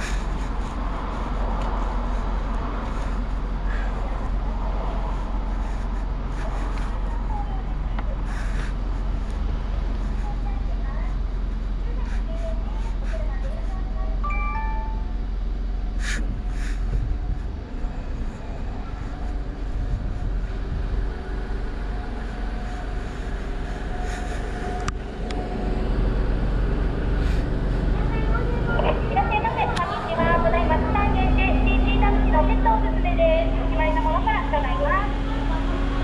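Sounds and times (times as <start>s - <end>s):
car engine idling: 0.0s - 36.0s
person speaking: 14.2s - 15.1s, 28.0s - 35.9s.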